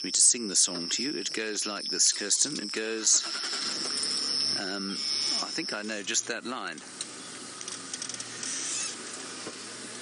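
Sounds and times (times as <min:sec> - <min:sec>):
wind hiss: 0:00.6 - 0:06.0
low engine hum: 0:03.3 - 0:10.0.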